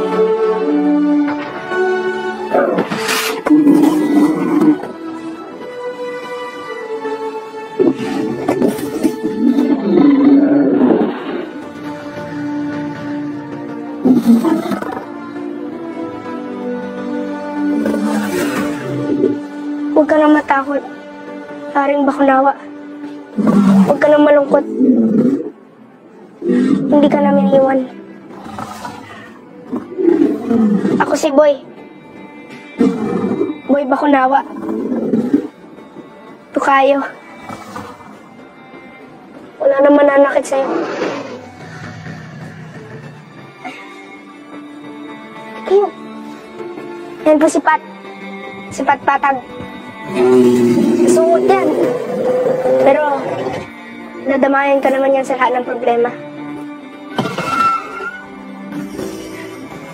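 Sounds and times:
background music: 0.0 - 59.9
film score with held tones: 0.0 - 59.9
dragon growling: 2.4 - 5.0, 7.7 - 12.9, 13.8 - 15.2, 17.6 - 19.6, 23.3 - 25.7, 26.3 - 31.3, 32.8 - 33.7, 34.4 - 35.7, 37.4 - 38.2, 40.5 - 43.6, 50.0 - 53.8
dragon roar: 7.8 - 11.6, 40.6 - 43.3, 50.1 - 53.7
spoken dialogue: 19.8 - 23.0, 23.6 - 25.4, 39.6 - 41.0, 47.1 - 53.6.

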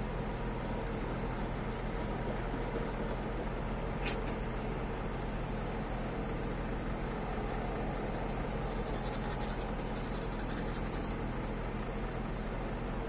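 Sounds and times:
diesel truck engines idling: 0.0 - 13.0.

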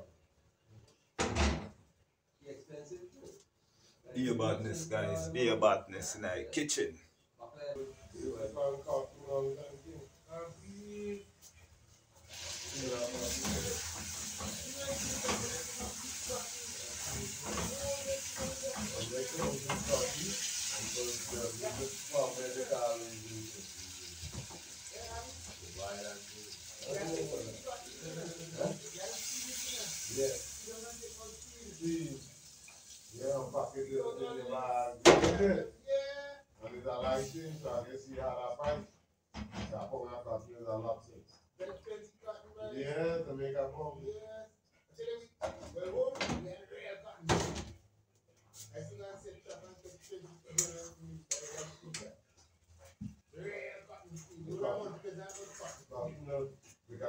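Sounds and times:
steady hiss: 12.3 - 34.1.

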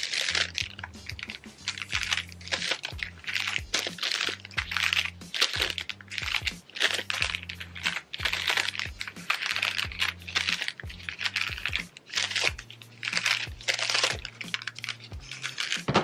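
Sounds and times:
soft background music: 0.0 - 16.0
thin paper rustling: 0.0 - 16.0.

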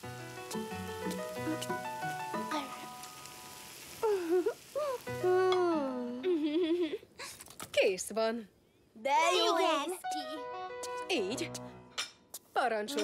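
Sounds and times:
light cartoon music: 0.0 - 3.3, 9.3 - 13.0
food sizzling in a pan: 0.0 - 6.6.

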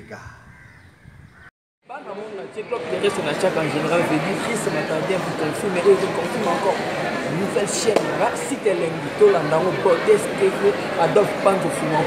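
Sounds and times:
man talking: 1.9 - 12.0.

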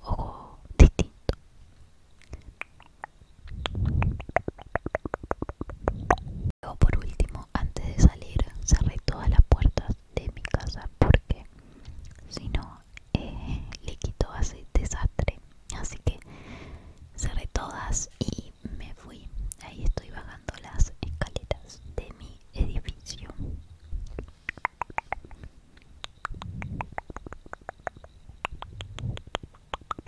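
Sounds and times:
person whispering: 0.0 - 1.4, 2.2 - 16.3, 17.2 - 23.5, 26.3 - 29.5.

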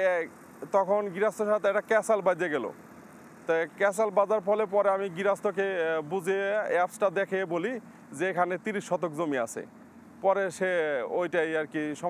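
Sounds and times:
man talking: 0.0 - 2.8, 3.5 - 12.0.

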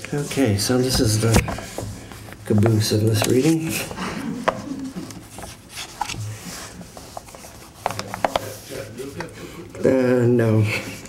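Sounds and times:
paper sheets shuffling: 0.0 - 9.9.

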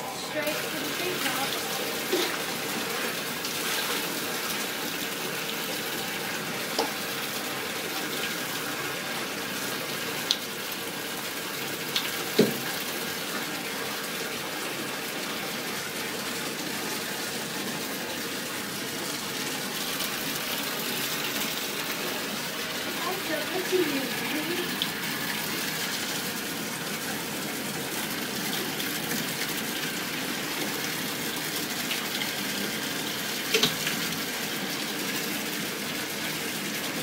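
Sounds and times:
water running from bathtub tap: 0.0 - 37.0.

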